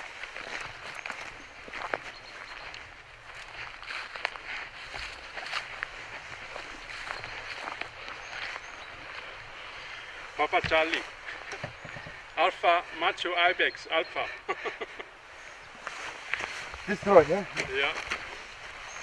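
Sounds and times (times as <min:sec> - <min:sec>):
footsteps on grass and stones: 0:00.0 - 0:13.2, 0:15.7 - 0:19.0
clothing and gear rustling: 0:15.5 - 0:19.0.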